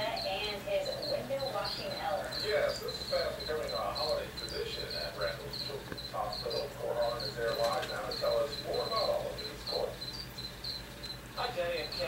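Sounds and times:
cricket chirping: 0:00.0 - 0:12.0.

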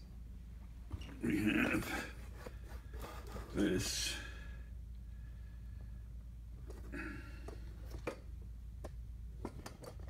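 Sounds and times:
man exhaling: 0:06.9 - 0:07.6.

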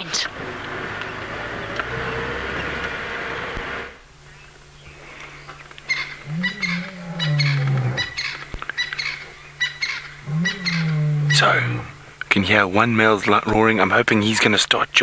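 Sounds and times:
vehicle driving on dirt track: 0:00.0 - 0:04.0
lion roaring and grunting: 0:06.2 - 0:08.2, 0:10.2 - 0:12.0.

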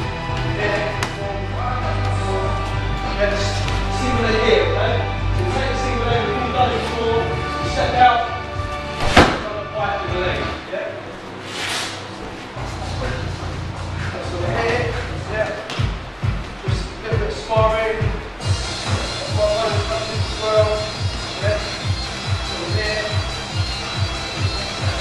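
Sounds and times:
background music: 0:00.0 - 0:25.0
body thud on gym mat: 0:09.0 - 0:09.6.

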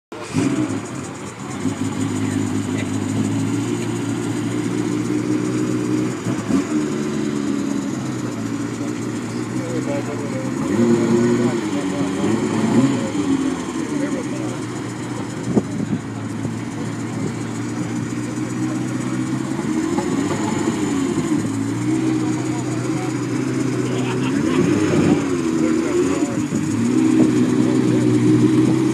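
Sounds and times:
car engine idling and revving: 0:00.1 - 0:28.9.

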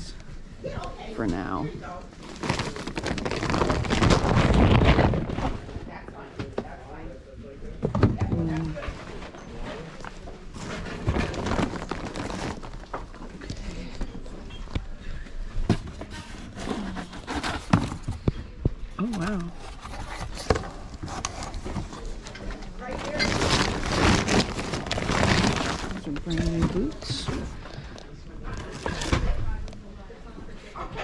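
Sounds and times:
towel rustling against microphone: 0:23.0 - 0:27.3.

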